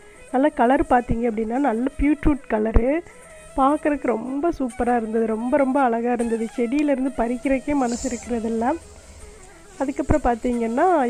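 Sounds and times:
woman narrating: 0.4 - 3.0, 3.6 - 8.9, 9.8 - 11.0.

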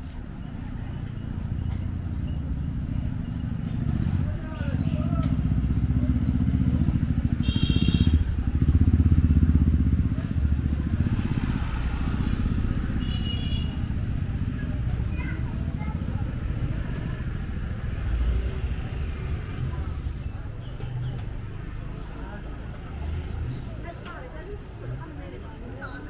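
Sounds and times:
scooters passing: 0.1 - 26.0.

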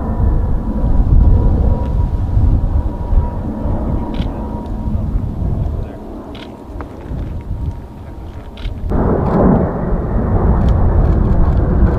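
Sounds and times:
jet aircraft rumble overhead: 0.0 - 11.9.

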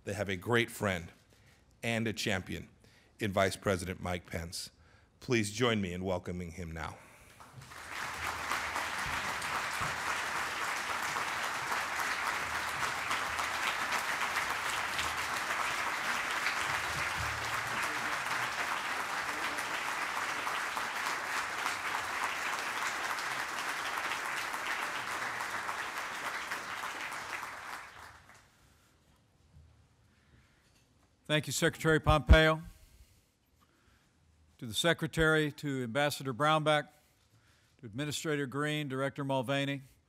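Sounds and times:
dense applause: 7.3 - 28.6.

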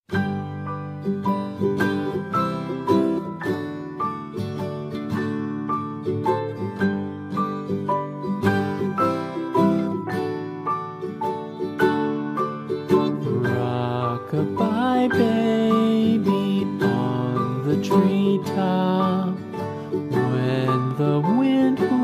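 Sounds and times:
plucked-string lullaby melody: 0.1 - 22.0.

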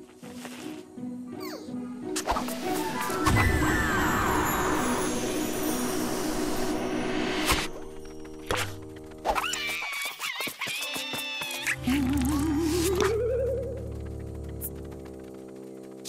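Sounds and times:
cartoon music: 1.3 - 5.5, 11.0 - 14.2.

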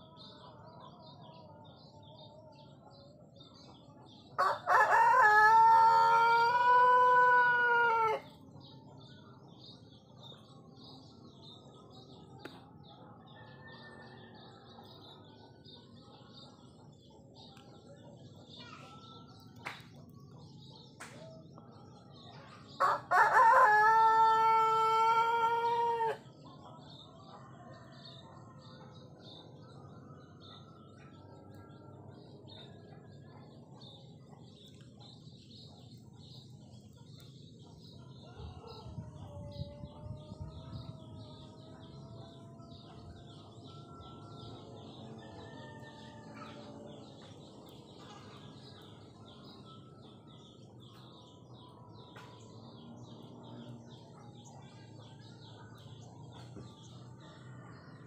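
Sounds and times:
small birds chirping: 0.0 - 58.0
rooster crowing: 4.4 - 8.3, 22.8 - 26.2.

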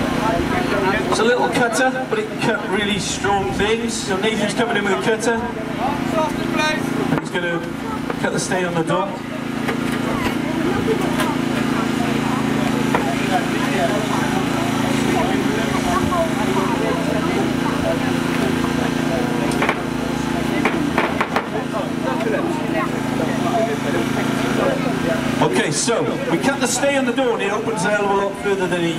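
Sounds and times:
crowd chatter: 0.0 - 28.9
engine humming: 0.0 - 28.9.

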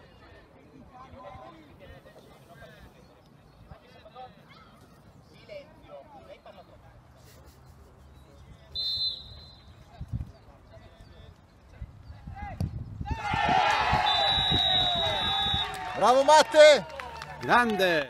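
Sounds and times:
referee's whistle blast: 8.7 - 9.7, 14.0 - 15.8
spectators cheering and shouting: 13.0 - 18.0.

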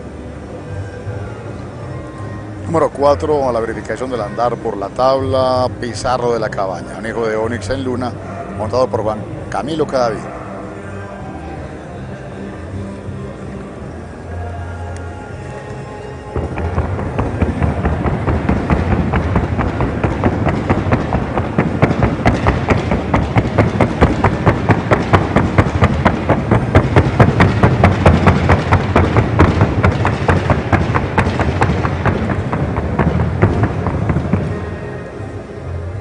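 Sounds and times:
background music: 0.0 - 36.0
horse hooves drumming on wooden board: 16.4 - 34.6.

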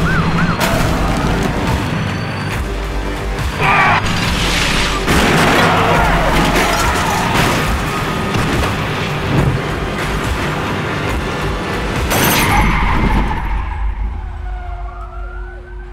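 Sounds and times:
police siren wailing: 0.0 - 2.4, 5.1 - 8.8, 12.4 - 15.9
action trailer music: 0.0 - 15.9.

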